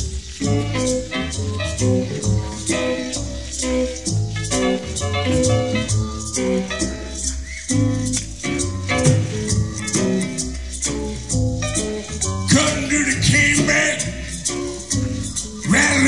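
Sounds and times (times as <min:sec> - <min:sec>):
bass notes: 0:00.0 - 0:16.0
live band playing: 0:00.0 - 0:16.0
percussion: 0:00.0 - 0:16.0.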